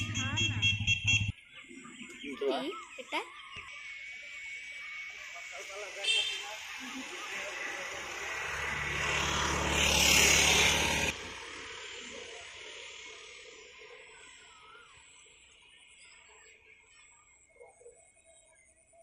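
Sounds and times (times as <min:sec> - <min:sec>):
motor vehicle passing close: 0:00.0 - 0:01.3, 0:06.8 - 0:13.5.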